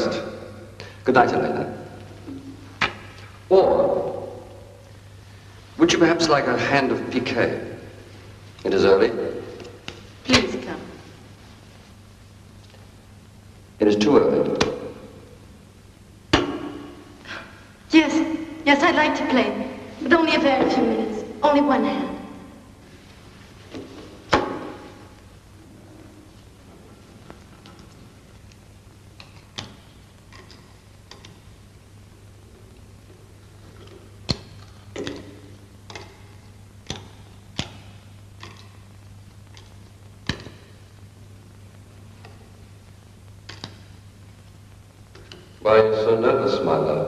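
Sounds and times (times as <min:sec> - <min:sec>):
steady low hum: 0:00.0 - 0:47.0
sharp knocks: 0:16.3 - 0:17.0, 0:24.3 - 0:25.0.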